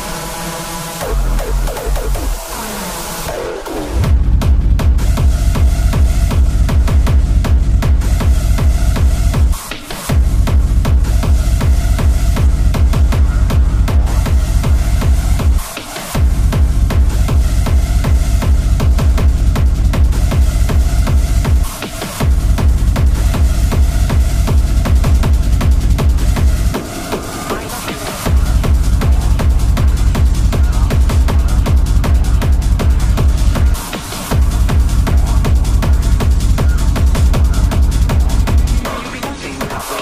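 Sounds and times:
heavy kick drum: 1.0 - 2.6, 3.2 - 40.0.

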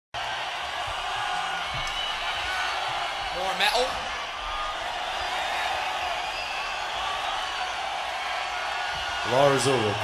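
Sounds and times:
crowd cheering and yelling: 0.2 - 10.0
people shouting: 0.2 - 10.0.

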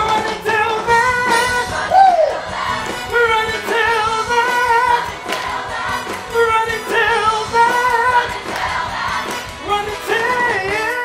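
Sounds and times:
upbeat band music: 0.0 - 11.0.

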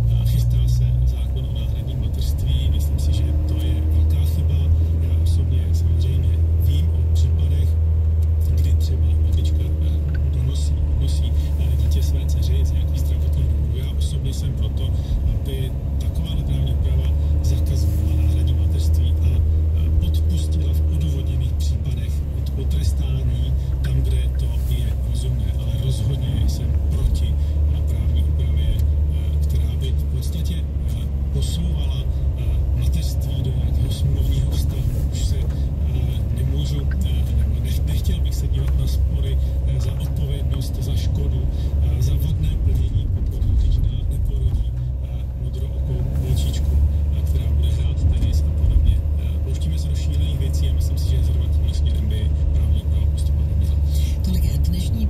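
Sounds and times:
car engine and tyres rumbling: 0.0 - 55.0.

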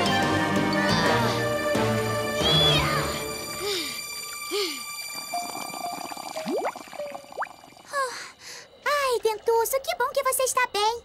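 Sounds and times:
cartoon bubble bloops: 5.2 - 8.0.

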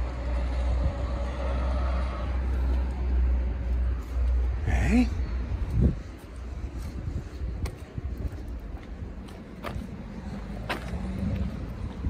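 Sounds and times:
car passing: 0.0 - 7.0, 8.5 - 12.0
low traffic rumble: 0.0 - 12.0.

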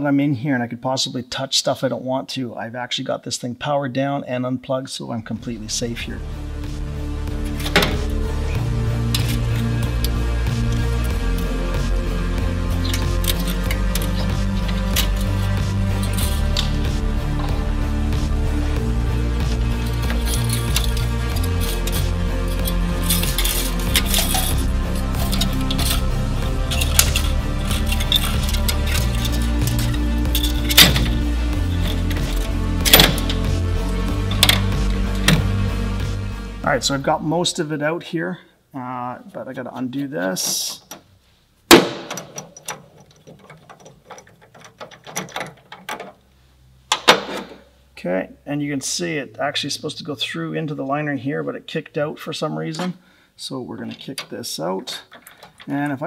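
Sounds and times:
background music with bass line: 5.2 - 37.8
metallic clinks of pliers and wire: 12.8 - 16.8, 19.8 - 33.4, 42.1 - 46.1, 55.0 - 55.7.

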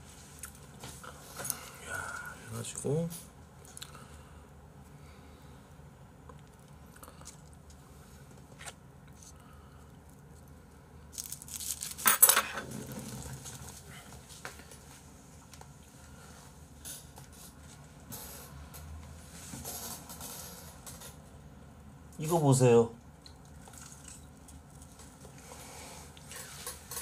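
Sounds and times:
rustling handling noise: 11.1 - 15.8.

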